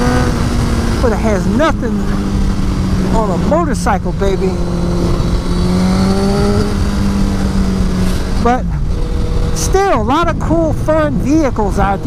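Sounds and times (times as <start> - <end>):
motorcycle engine droning: 0.0 - 12.0
wind rushing on microphone: 0.0 - 12.0.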